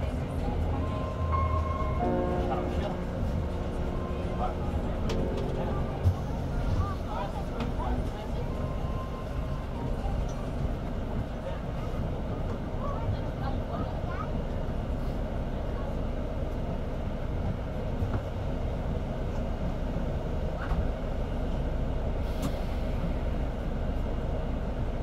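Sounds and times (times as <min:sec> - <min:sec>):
faint voices: 0:00.0 - 0:17.3
bus engines idling: 0:00.0 - 0:25.0.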